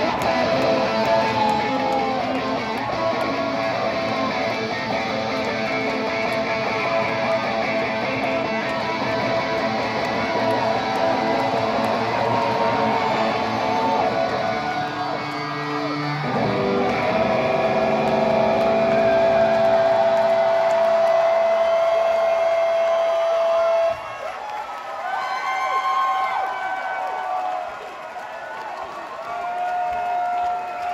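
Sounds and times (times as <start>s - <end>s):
electric guitar feedback: 0.0s - 24.0s
crowd cheering and whistling: 0.0s - 30.9s.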